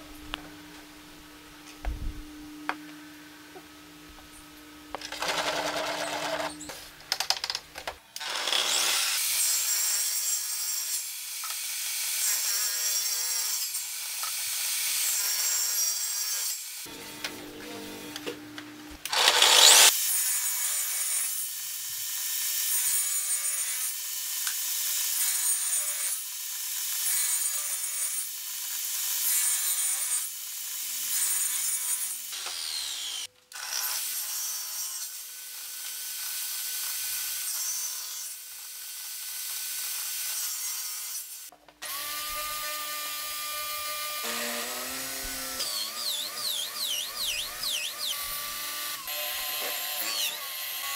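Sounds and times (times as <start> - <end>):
table saw ripping wood: 5.0 - 6.8, 8.2 - 9.7, 19.1 - 20.1, 41.8 - 50.9.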